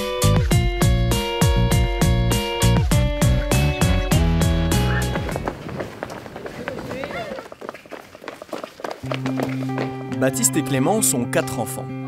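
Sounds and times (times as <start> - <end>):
children's running footsteps: 4.6 - 10.3.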